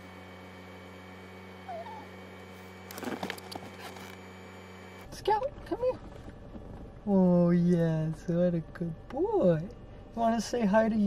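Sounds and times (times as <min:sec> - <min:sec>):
steady low hum: 0:00.0 - 0:11.0
dog whimpering: 0:01.6 - 0:02.2.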